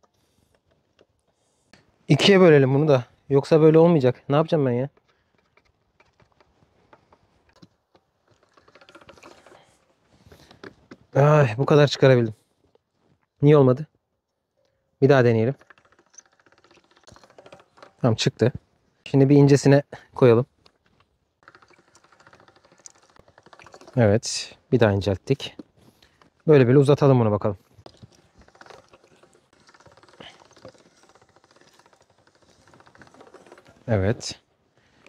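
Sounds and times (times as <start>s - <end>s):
pasta machine gears clicking: 8.2s - 9.8s, 15.1s - 18.6s, 21.4s - 24.5s, 27.6s - 35.0s.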